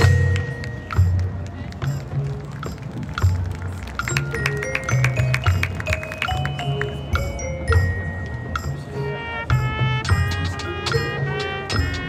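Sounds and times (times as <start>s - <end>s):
mallet percussion tones: 0.0s - 12.0s.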